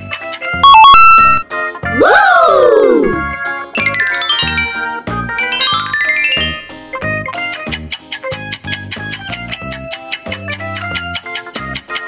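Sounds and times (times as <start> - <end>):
bright electronic jingle: 0.6 - 1.4, 3.8 - 7.0
background music with steady beat: 6.7 - 12.0.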